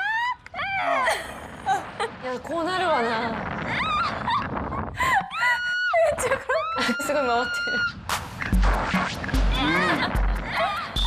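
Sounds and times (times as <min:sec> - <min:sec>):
young woman screaming: 0:05.2 - 0:08.0
music beat: 0:08.1 - 0:11.0.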